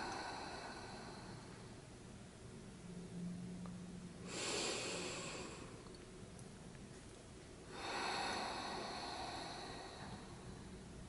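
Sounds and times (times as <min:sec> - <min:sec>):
person breathing: 0:00.0 - 0:01.8, 0:04.2 - 0:05.9, 0:07.6 - 0:11.0.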